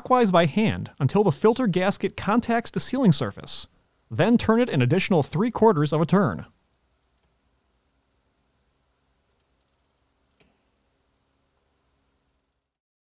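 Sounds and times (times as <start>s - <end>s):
wrench clicking: 6.6s - 7.3s, 9.3s - 10.6s, 12.2s - 12.8s.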